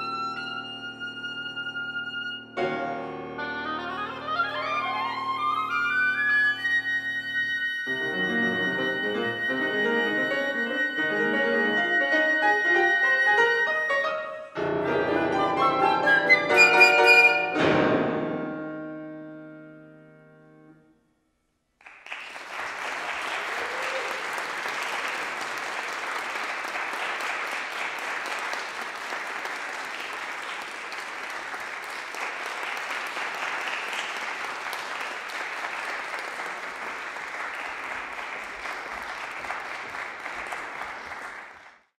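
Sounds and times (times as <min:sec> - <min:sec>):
audience applauding: 0:21.8 - 0:41.9.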